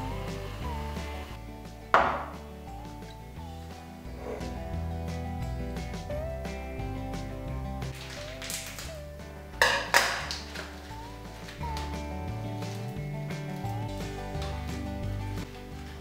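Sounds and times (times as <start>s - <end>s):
instrumental music with bass line: 0.0s - 16.0s.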